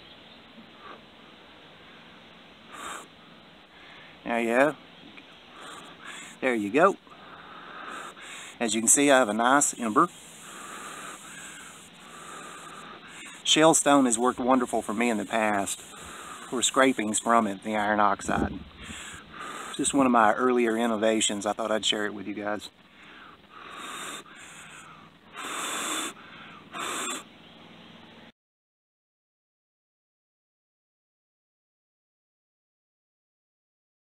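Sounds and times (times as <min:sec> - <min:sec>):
person blowing on ember: 0:02.7 - 0:03.1, 0:05.5 - 0:06.4, 0:07.1 - 0:17.3, 0:18.8 - 0:19.9, 0:23.0 - 0:27.3.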